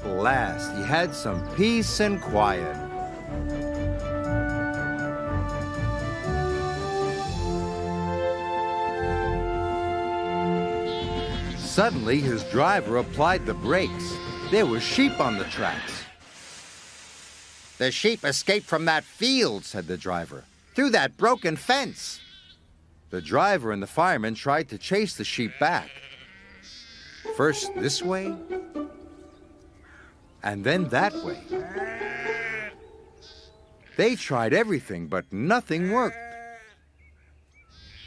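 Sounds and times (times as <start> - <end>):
sheep bleating: 10.9 - 12.2, 21.6 - 22.6, 25.4 - 27.4, 30.8 - 34.2, 35.9 - 36.8, 37.7 - 38.0
faint steady hiss: 16.1 - 22.1
person speaking: 27.3 - 28.9, 30.4 - 31.7.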